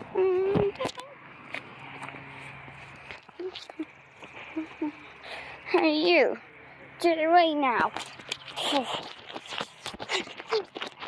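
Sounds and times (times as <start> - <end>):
footsteps on gravel and grass: 1.4 - 4.5, 7.7 - 11.0
person laughing: 3.7 - 5.0.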